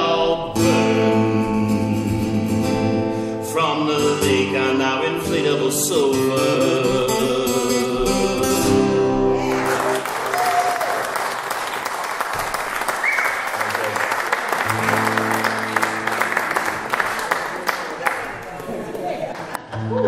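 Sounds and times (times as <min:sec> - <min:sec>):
acoustic guitar: 0:00.0 - 0:10.2, 0:14.6 - 0:17.6
audience applause: 0:09.4 - 0:19.6.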